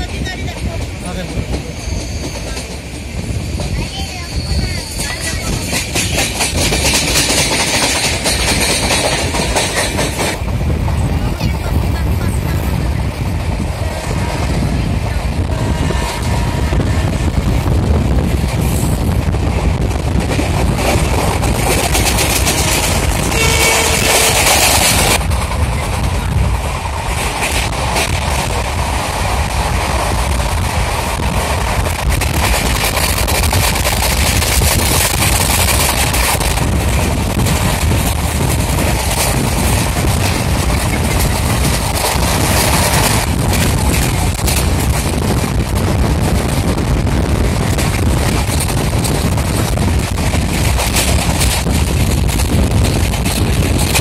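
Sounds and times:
train wheels rumbling on rails: 0.0 - 54.0.

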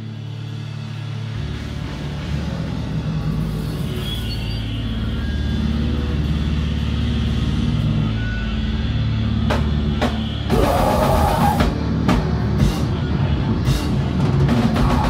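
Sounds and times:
electric guitar low drone: 0.0 - 15.0.

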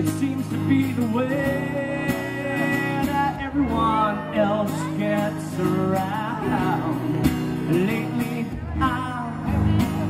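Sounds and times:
acoustic guitar strumming: 0.0 - 10.0
man singing: 0.0 - 10.0.

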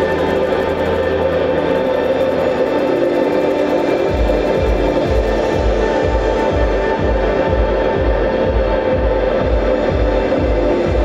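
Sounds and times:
ambient guitar drone music: 0.0 - 11.0
low pulsing electronic beat: 0.0 - 11.0.

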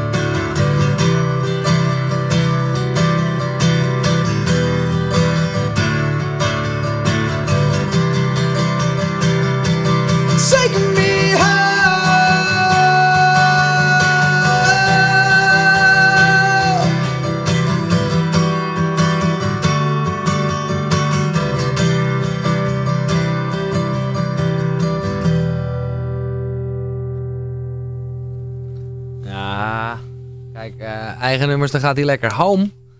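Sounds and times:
acoustic guitars strumming: 0.0 - 32.9
singer holding long note: 10.3 - 17.3, 29.2 - 30.1
man speaking: 29.2 - 32.8.

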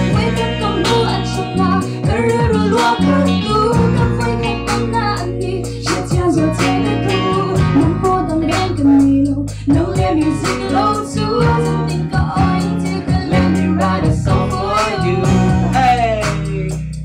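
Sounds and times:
woman singing: 0.0 - 16.8
drums: 0.0 - 17.0
electric bass: 0.0 - 17.0
electric guitar: 0.0 - 17.0
keyboard: 0.0 - 17.0
man singing: 13.9 - 17.0.

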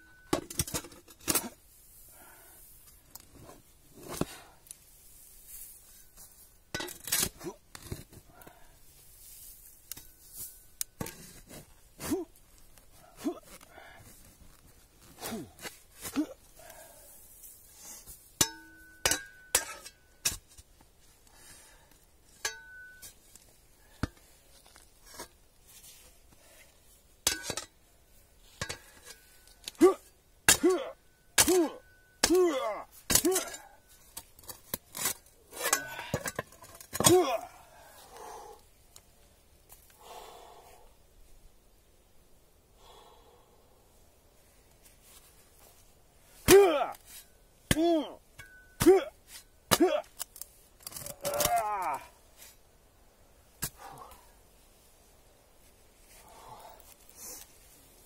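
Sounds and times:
spade clanking and scraping on metal: 0.0 - 1.6, 5.9 - 8.2, 18.4 - 20.7, 22.3 - 23.3, 27.2 - 27.8, 28.5 - 37.4, 46.5 - 51.6.

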